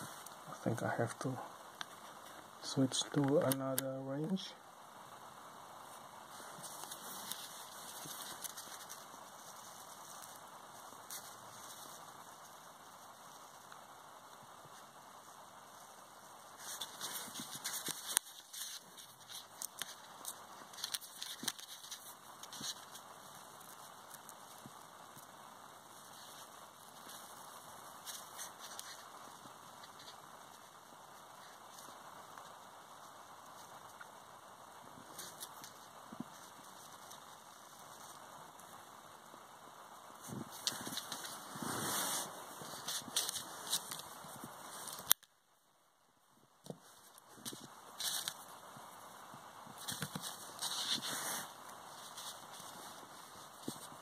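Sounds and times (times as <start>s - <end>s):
rustling: 0.0s - 45.4s, 46.4s - 54.0s
steady background hiss: 0.0s - 54.0s.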